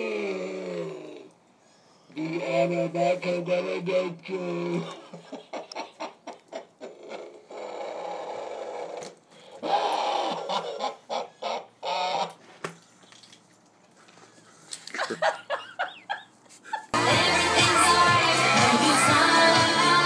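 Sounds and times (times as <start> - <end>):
electronically distorted woman laughing: 14.9 - 17.0.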